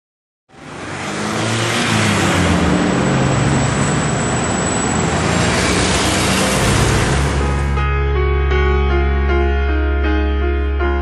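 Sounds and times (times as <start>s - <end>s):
road noise from passing cars: 0.5s - 7.9s.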